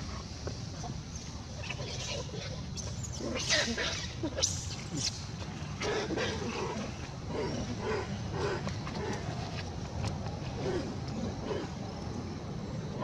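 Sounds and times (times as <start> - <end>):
steady low background noise: 0.0 - 13.0.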